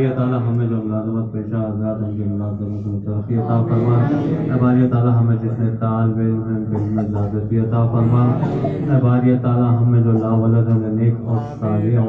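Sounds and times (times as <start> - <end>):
man chanting a prayer: 0.0 - 12.0.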